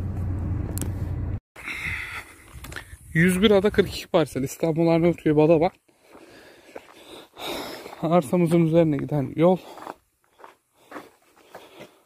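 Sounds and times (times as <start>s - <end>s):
footsteps on grassy dirt: 4.5s - 12.0s.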